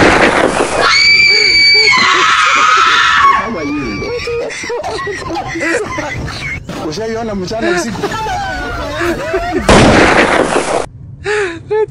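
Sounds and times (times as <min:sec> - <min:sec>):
loud burst of noise: 0:09.7 - 0:10.9.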